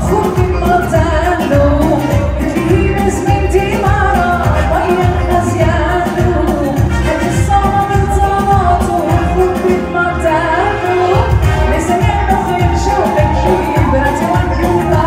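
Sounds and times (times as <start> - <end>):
woman singing into microphone: 0.0 - 15.0.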